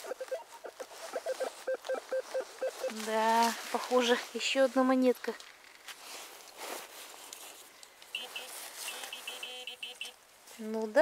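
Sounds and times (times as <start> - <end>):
metal detector short beeps: 8.1 - 10.2.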